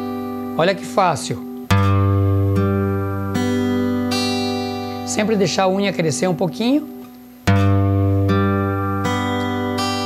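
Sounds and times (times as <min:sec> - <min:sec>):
acoustic guitar fingerpicking: 0:00.0 - 0:10.0.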